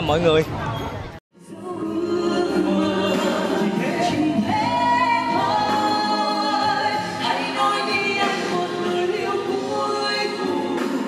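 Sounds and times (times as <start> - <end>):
musical backing: 1.4 - 11.0.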